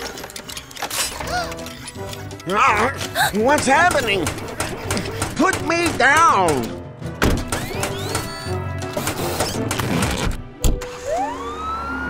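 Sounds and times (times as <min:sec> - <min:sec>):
police siren wailing: 0:10.9 - 0:12.0.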